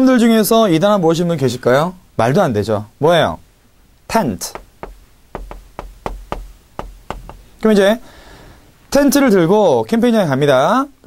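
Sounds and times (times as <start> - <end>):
chalk tapping on chalkboard: 4.5 - 7.6.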